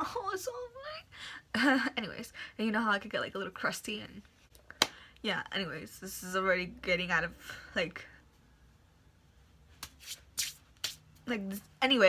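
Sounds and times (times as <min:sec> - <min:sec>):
hands brushing swishes: 0:09.7 - 0:11.6.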